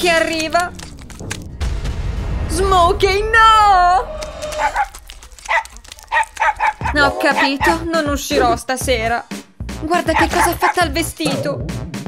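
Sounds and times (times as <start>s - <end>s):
small dog barking: 4.6s - 7.8s, 10.1s - 10.8s.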